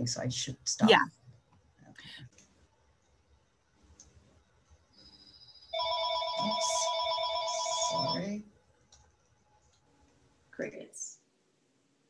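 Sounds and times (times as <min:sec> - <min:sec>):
phone ringtone ringing: 0:05.8 - 0:08.3.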